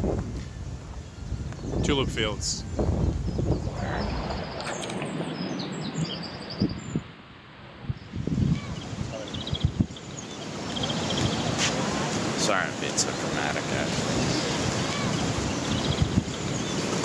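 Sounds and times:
wind rumbling on microphone: 0:00.0 - 0:17.0
small birds chirping: 0:00.6 - 0:07.0, 0:08.0 - 0:17.0
bird trill: 0:14.8 - 0:16.9.

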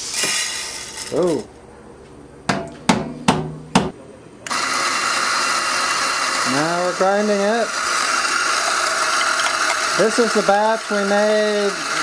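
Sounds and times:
coffee grinder grinding: 0:00.0 - 0:01.4, 0:04.5 - 0:12.0.

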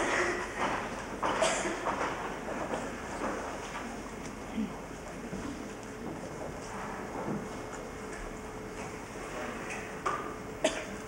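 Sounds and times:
knocks and rustles on a stage: 0:00.0 - 0:04.4, 0:05.2 - 0:10.4
low hum of a hall: 0:00.0 - 0:11.0.

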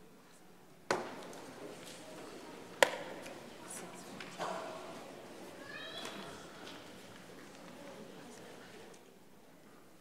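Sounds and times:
low murmur of congregation: 0:00.0 - 0:10.0.

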